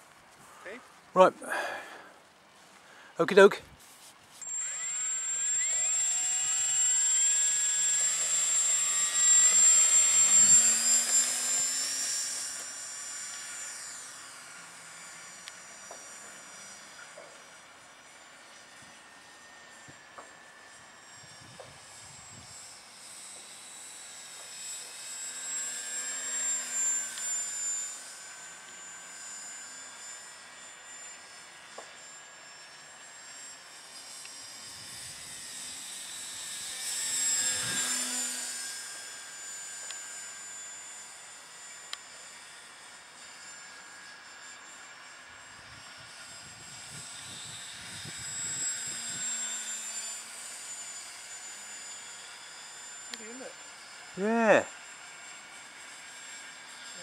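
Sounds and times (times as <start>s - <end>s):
model plane high-pitched whine: 0.0s - 57.0s.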